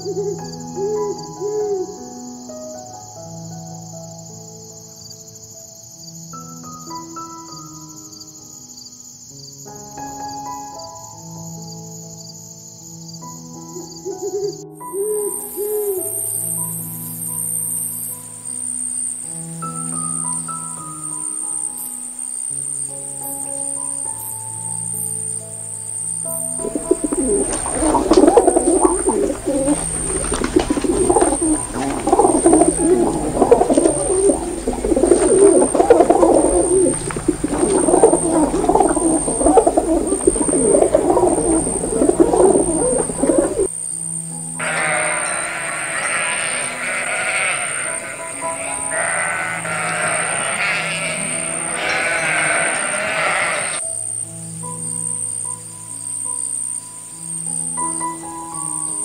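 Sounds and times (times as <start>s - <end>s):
soft background music: 0.0s - 59.0s
pigeon cooing: 13.8s - 16.4s, 26.4s - 43.7s, 44.6s - 53.8s
higher-pitched animal calling: 26.4s - 43.7s, 44.6s - 53.8s.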